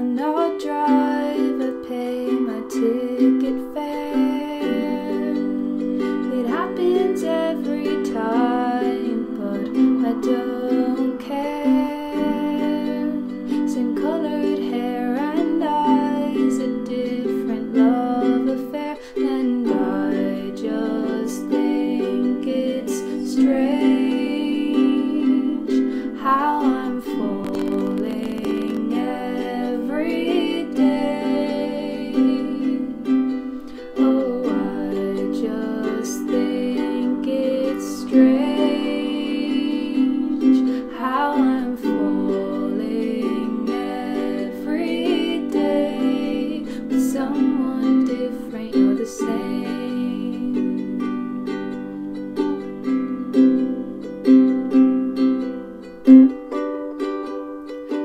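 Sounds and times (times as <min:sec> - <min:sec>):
woman singing: 0:00.0 - 0:54.1
strummed ukulele: 0:00.0 - 0:58.0.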